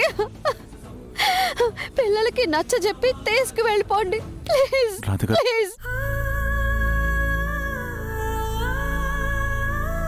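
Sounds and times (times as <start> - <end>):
woman sobbing: 0.0 - 2.1, 4.5 - 6.2.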